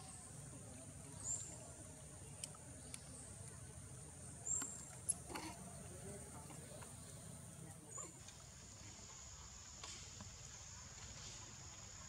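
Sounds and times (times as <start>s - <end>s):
faint high-pitched insect drone: 0.0s - 12.0s.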